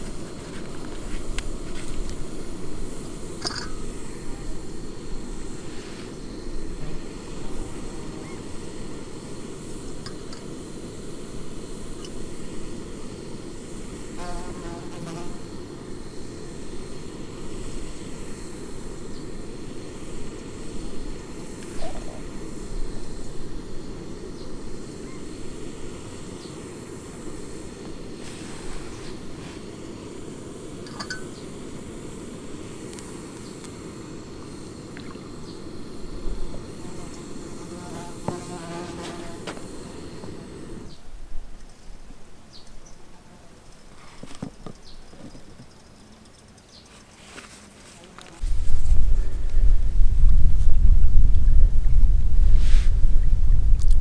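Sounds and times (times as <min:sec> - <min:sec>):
gas stove hissing: 0:00.0 - 0:41.1, 0:48.2 - 0:54.0.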